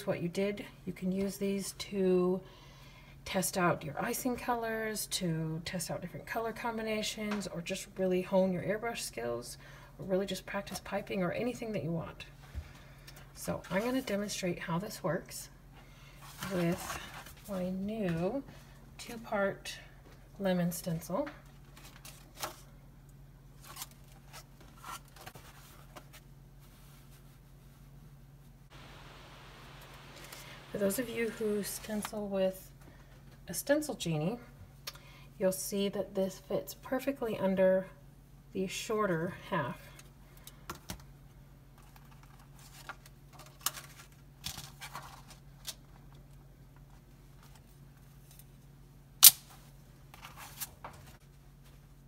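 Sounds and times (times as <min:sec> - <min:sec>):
steady low hum: 0:00.0 - 0:43.4
plastic sheets and paper rustling: 0:16.2 - 0:18.4, 0:29.9 - 0:32.3, 0:41.8 - 0:45.8.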